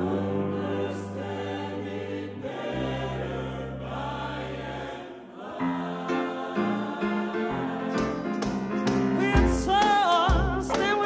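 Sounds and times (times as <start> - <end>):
vocal group singing held chords: 0.0 - 11.0.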